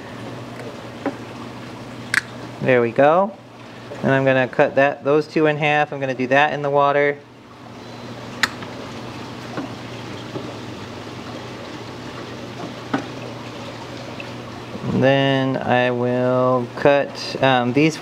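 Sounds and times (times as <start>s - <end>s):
water sloshing and trickling: 0.0s - 18.0s.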